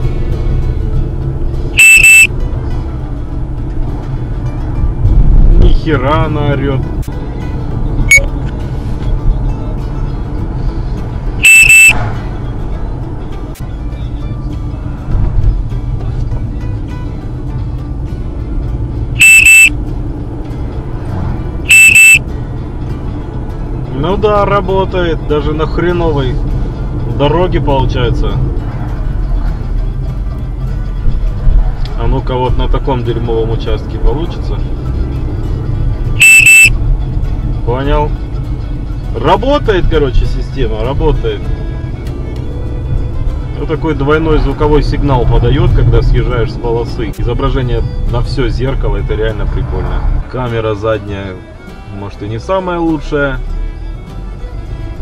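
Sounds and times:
road and engine noise: 0:00.0 - 0:55.0
loud double beep warning: 0:01.8 - 0:02.3, 0:11.4 - 0:12.0, 0:19.2 - 0:19.7, 0:21.7 - 0:22.2, 0:36.2 - 0:36.7.

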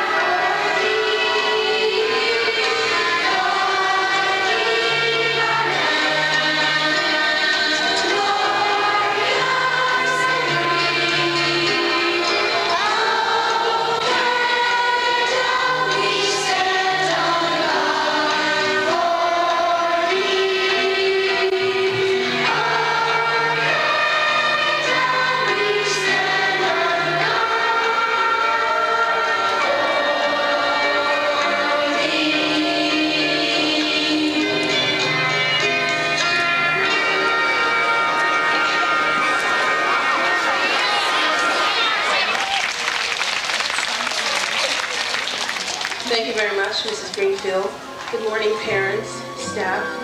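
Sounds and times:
children's choir singing: 0:00.0 - 0:42.6.

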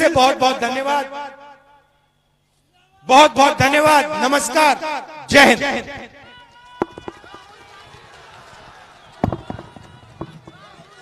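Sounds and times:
crowd chatter: 0:06.2 - 0:11.0
thumps on microphone: 0:06.8 - 0:07.4, 0:09.2 - 0:10.7.

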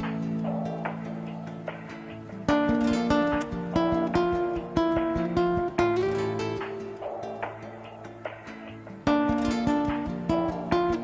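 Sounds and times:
acoustic guitar plucking: 0:00.0 - 0:11.0.

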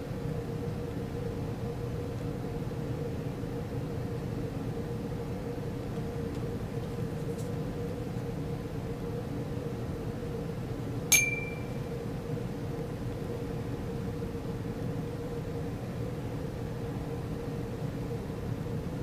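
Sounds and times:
steady low hum: 0:00.0 - 0:19.0
glassware clinking: 0:11.1 - 0:11.7.

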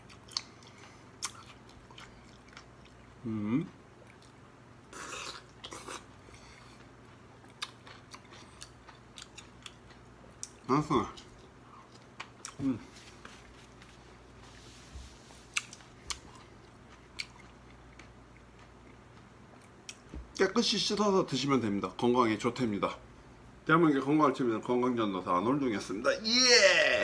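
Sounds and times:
person chewing: 0:00.0 - 0:14.5, 0:15.4 - 0:20.1
person humming: 0:03.2 - 0:03.7.

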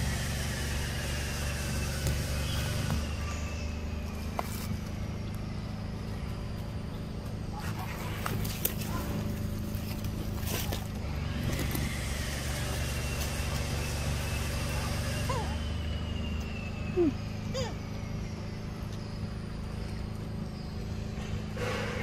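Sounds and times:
low motor hum: 0:00.0 - 0:22.0.

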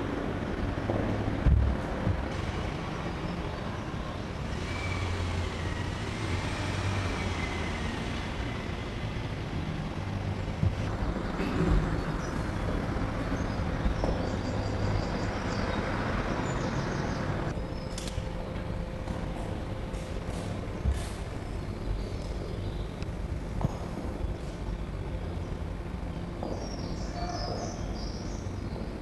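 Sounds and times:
road traffic rumble: 0:00.0 - 0:29.0.

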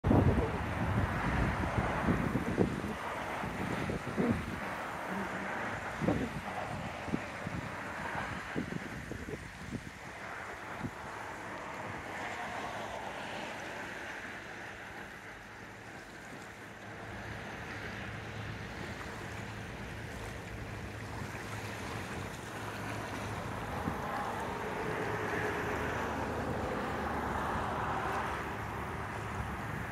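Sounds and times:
wind buffeting microphone: 0:00.0 - 0:15.1, 0:17.1 - 0:29.9
low engine hum: 0:00.0 - 0:29.9
steady outdoor hiss: 0:00.1 - 0:29.9.

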